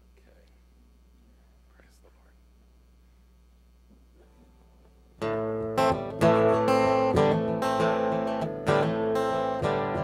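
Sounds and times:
low steady hum: 0.0 - 7.9
faint whisper: 0.1 - 2.5.

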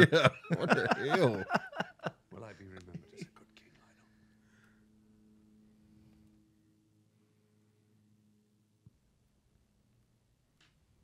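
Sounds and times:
hushed voice chuckling: 0.0 - 3.9
faint low hum: 0.0 - 11.0.

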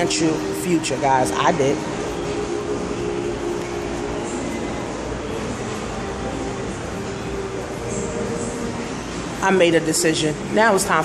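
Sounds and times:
machine hum: 0.0 - 11.0.

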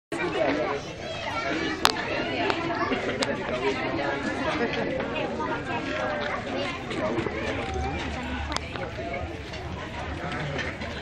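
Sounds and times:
crowd talking: 0.1 - 11.0.

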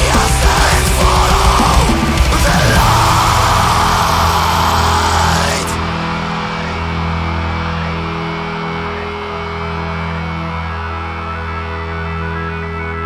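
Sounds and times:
death metal band playing: 0.0 - 13.0
sustained low notes: 0.0 - 13.0.

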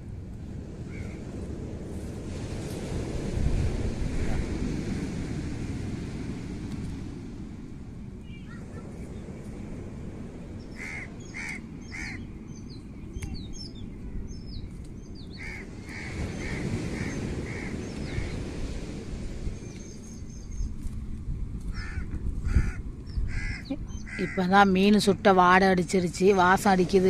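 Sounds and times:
wind rumbling on microphone: 0.0 - 27.0
crows cawing: 0.9 - 1.2, 10.8 - 12.2, 15.4 - 18.4, 21.7 - 24.5
small birds chirping: 10.6 - 18.4, 19.6 - 20.9, 23.0 - 24.4.

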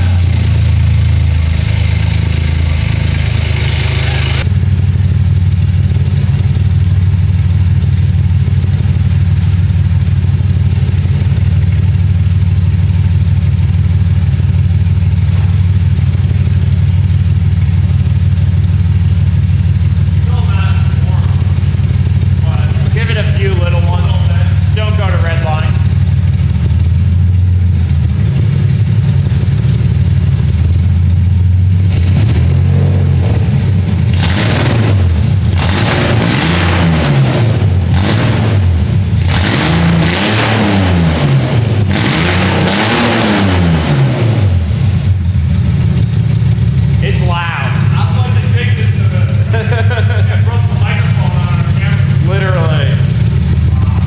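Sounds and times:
loud car engine running: 0.0 - 54.0.

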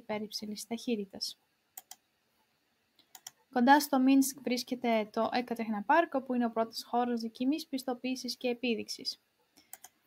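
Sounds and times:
computer clicks: 1.8 - 2.0, 3.0 - 3.4, 9.6 - 10.0.

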